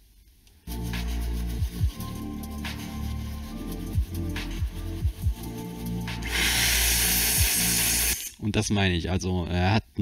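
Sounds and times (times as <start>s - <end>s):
background music: 0.5s - 8.5s
air duster hissing: 0.7s - 8.4s.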